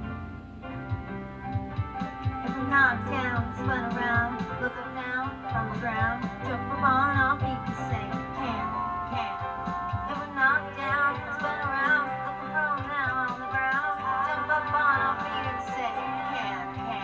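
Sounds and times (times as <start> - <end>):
upbeat bouncy song: 0.0 - 17.0.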